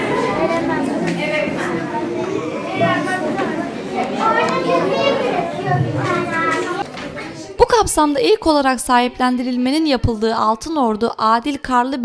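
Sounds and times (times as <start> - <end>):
young children talking: 0.0 - 8.0.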